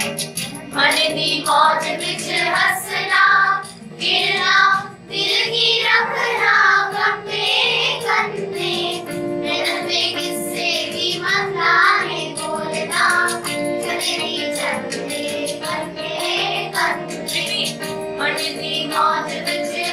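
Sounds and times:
electronic keyboard accompaniment: 0.0s - 19.9s
children singing folk song: 0.8s - 19.9s.

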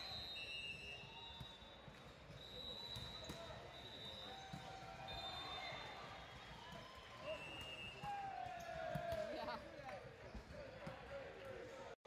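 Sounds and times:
volleyball hits: 0.7s - 9.6s.

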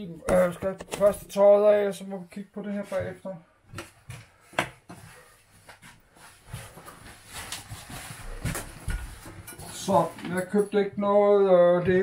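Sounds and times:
clothing rustling: 0.2s - 10.6s.

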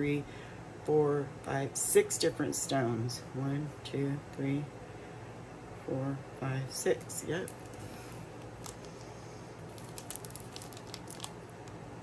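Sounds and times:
low room hum: 0.0s - 12.0s
plastic packet crinkling: 7.4s - 11.8s.

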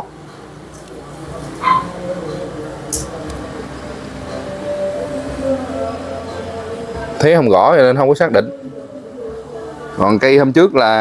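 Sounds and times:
high-pitched animal call: 1.6s - 2.0s.

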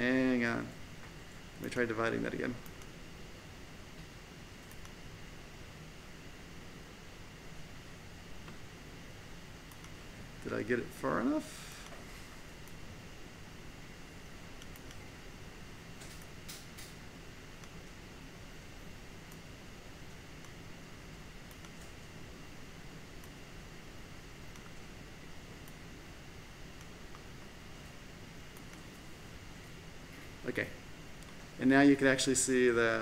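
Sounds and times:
steady hum and hiss: 0.0s - 33.0s
computer mouse clicks: 4.6s - 5.0s, 9.7s - 10.0s, 14.6s - 15.0s, 21.5s - 22.0s, 24.5s - 24.8s.

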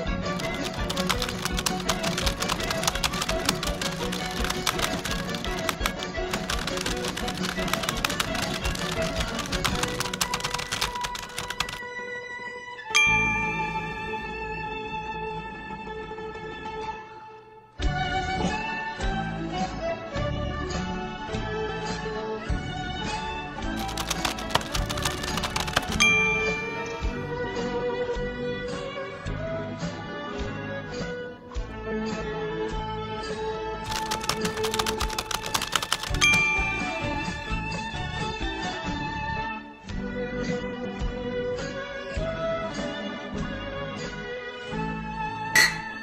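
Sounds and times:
background music: 0.0s - 46.0s
keyboard typing clicks: 0.3s - 11.8s, 23.8s - 27.0s, 33.9s - 37.4s.

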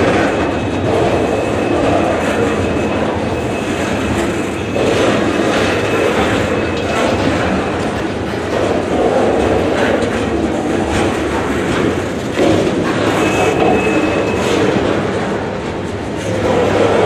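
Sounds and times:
steel wheels rumbling on rail: 0.0s - 17.0s
wheels clacking over rail joints: 0.0s - 17.0s
high wheel squeal: 0.3s - 8.0s, 13.0s - 15.2s.

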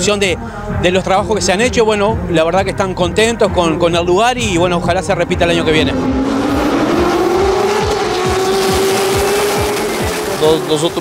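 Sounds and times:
race car accelerating: 4.6s - 11.0s
race cars passing by: 5.0s - 11.0s.

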